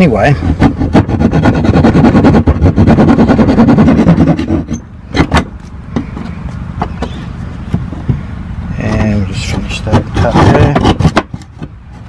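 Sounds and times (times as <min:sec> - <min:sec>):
hand saw cutting plywood: 0:00.0 - 0:05.5, 0:08.9 - 0:12.0.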